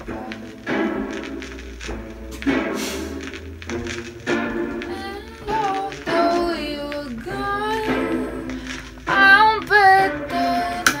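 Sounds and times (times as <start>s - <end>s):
girl singing held notes: 4.9s - 11.0s.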